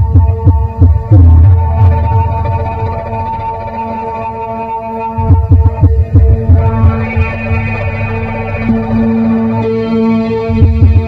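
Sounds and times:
deep low electronic pulses: 0.0s - 11.0s
electronic drone tone: 0.0s - 11.0s.

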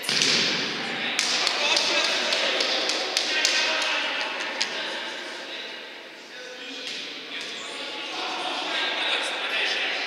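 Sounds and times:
players calling out: 0.0s - 5.4s.

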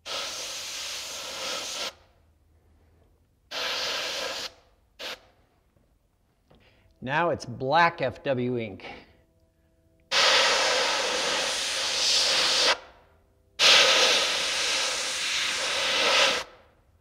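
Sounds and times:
airbrush hissing: 0.0s - 2.1s, 3.5s - 5.3s, 10.1s - 12.8s, 13.6s - 16.6s.

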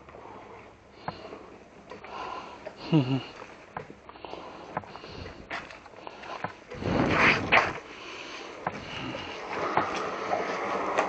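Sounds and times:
person sniffing and breathing: 4.1s - 10.4s.

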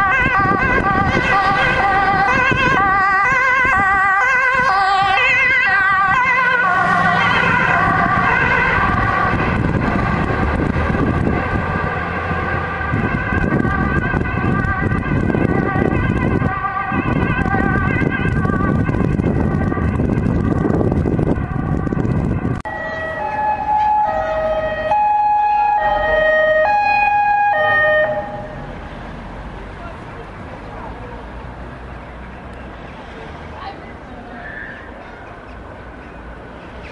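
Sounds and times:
two-tone siren: 0.0s - 9.8s, 12.2s - 28.7s
street traffic: 0.0s - 36.9s
fast warbling siren: 12.4s - 28.6s.

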